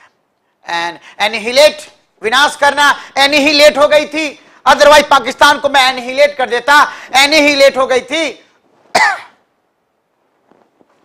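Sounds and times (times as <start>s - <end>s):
man clearing his throat: 8.9s - 9.4s.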